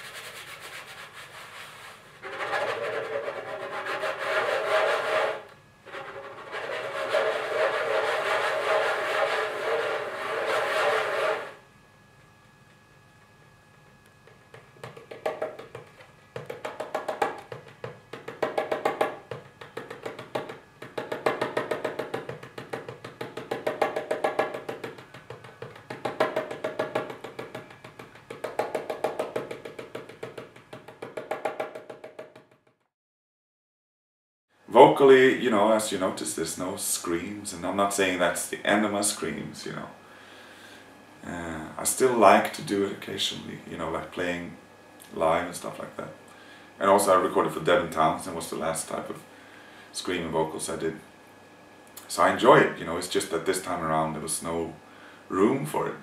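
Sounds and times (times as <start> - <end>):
hand drum strokes: 1.6 - 11.6, 14.9 - 32.6.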